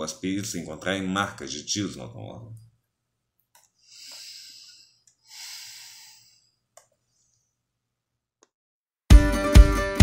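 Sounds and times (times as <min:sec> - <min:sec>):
man breathing into microphone: 0:03.8 - 0:06.6.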